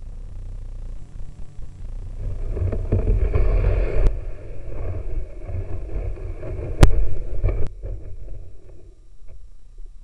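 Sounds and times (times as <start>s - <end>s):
snow crunching: 2.1s - 8.8s
boat scraping over snow and ice: 2.2s - 8.9s.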